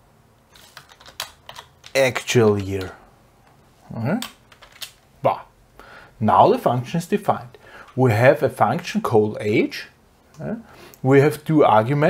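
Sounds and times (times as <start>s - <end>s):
keyboard typing clicks: 0.6s - 3.0s.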